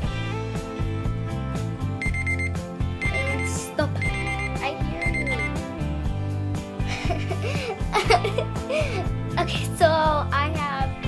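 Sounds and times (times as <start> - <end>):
background music with steady beat: 0.0 - 11.0
timer alarm beeping: 2.0 - 5.6.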